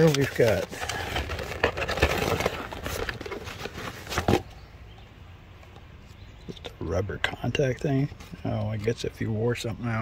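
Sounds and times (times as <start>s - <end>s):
packaging rustling: 0.0s - 4.5s.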